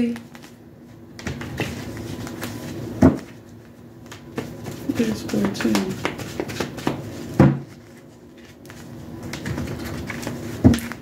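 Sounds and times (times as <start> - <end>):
cards shuffling: 0.0 - 0.6, 1.2 - 11.0.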